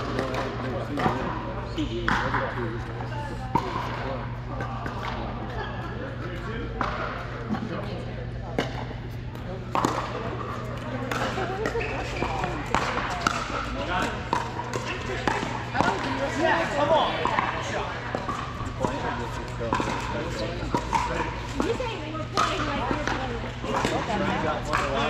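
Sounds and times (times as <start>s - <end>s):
paddles striking balls: 0.0s - 1.4s, 2.0s - 5.6s, 6.2s - 7.7s, 8.4s - 25.0s
balls bouncing on court floor: 0.0s - 25.0s
voices chattering in a hall: 0.0s - 25.0s.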